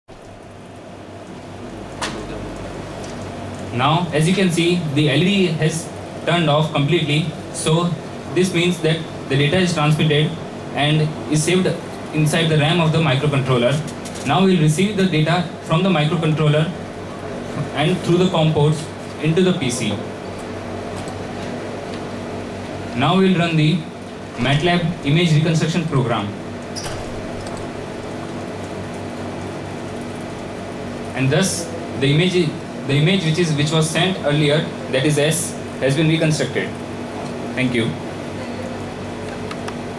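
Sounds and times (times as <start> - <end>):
room tone hum and hiss: 0.1 - 39.9.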